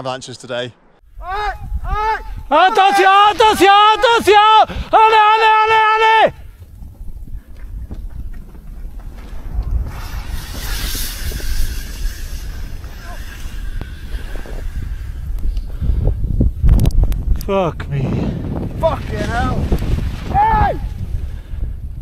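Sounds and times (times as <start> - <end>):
wind buffeting microphone: 1.0 - 22.0
avalanche rushing: 1.1 - 22.0
person shouting: 1.2 - 6.4, 20.3 - 20.9.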